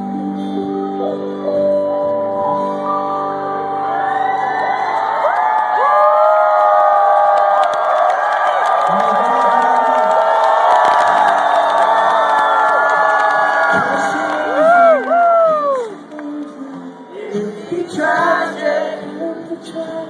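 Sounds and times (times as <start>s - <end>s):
concert crowd cheering and whooping: 3.5s - 19.0s.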